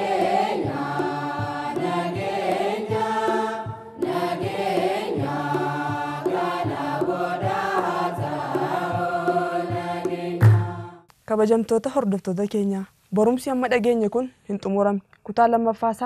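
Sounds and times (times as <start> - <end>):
low beat: 0.0 - 11.0
voices singing religious chant: 0.0 - 11.1
loud low thump: 9.7 - 11.0.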